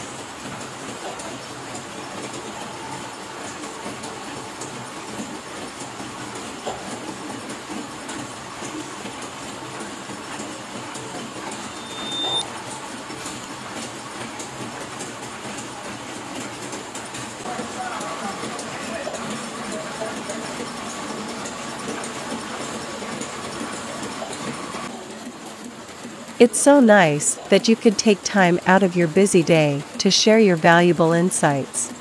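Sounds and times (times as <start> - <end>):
printing press clatter: 0.0 - 26.4
high-pitched tone: 11.6 - 12.4.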